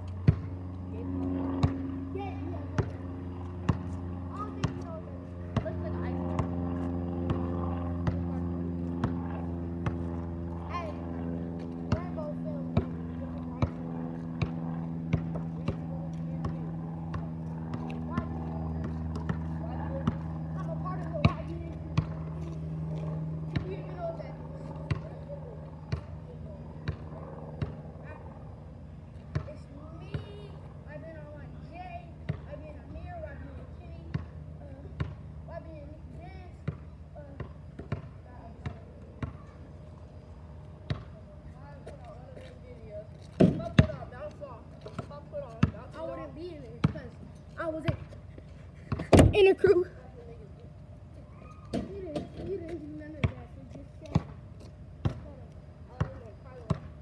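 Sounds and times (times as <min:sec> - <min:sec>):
basketball bouncing on asphalt: 0:00.0 - 0:28.2, 0:28.9 - 0:50.3, 0:51.1 - 0:57.0.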